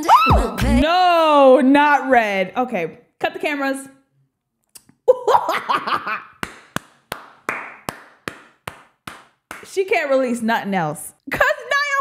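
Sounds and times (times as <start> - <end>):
woman laughing excitedly: 5.1 - 6.4
hands clapping: 6.3 - 9.8.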